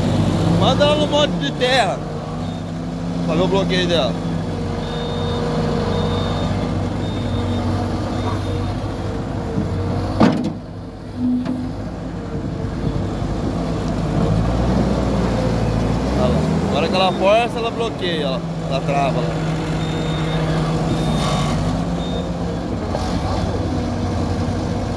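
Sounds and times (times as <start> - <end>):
diesel engine running: 0.0 - 24.9.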